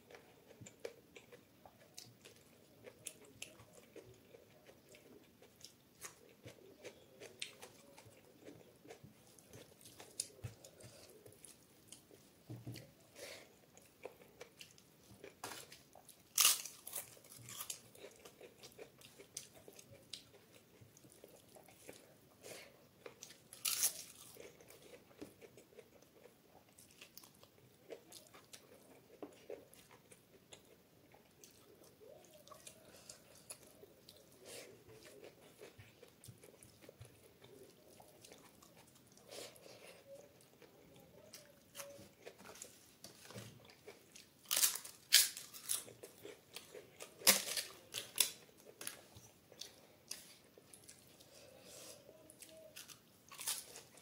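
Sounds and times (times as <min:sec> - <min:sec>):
chewing and crackling: 0:00.0 - 0:54.0.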